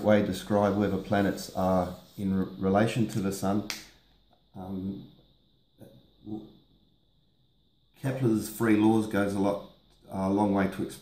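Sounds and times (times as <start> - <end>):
faint high-pitched whine: 0.0 - 11.0
man saying uh: 4.6 - 5.0, 6.3 - 6.5.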